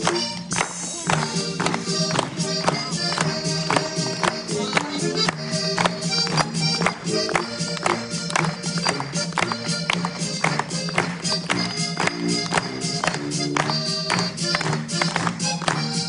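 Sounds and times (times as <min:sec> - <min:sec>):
band backing track: 0:00.0 - 0:16.0
button accordion playing polka: 0:00.0 - 0:16.0.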